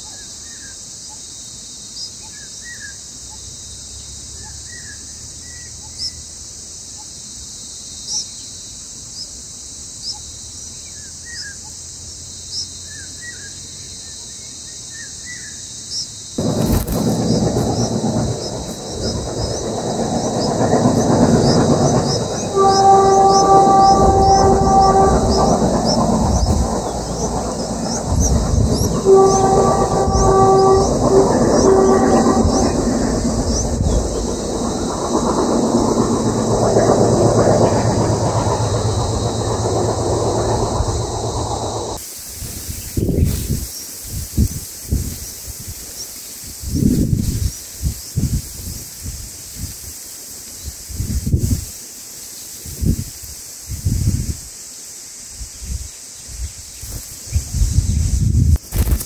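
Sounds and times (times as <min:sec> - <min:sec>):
insects trilling: 0:00.0 - 0:59.0
train rumble passing close: 0:16.2 - 0:54.5
train horn blasts: 0:16.4 - 0:42.0.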